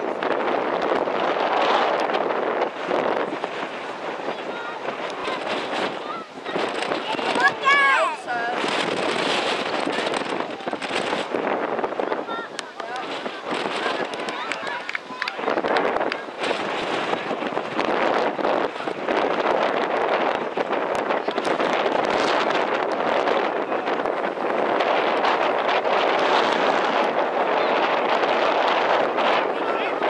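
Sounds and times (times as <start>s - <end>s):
wind on microphone: 0.0s - 30.0s
faint shouted voices: 3.1s - 26.2s, 26.9s - 30.0s.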